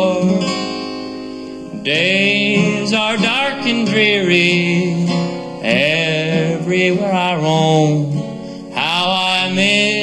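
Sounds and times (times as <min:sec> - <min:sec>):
man singing slow ballad: 0:00.0 - 0:10.0
strummed acoustic guitar: 0:00.0 - 0:10.0.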